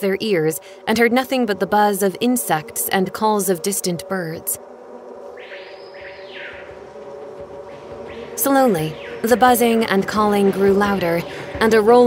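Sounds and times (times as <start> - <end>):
insects buzzing: 0.0 - 12.0
distant bird calls: 4.6 - 12.0.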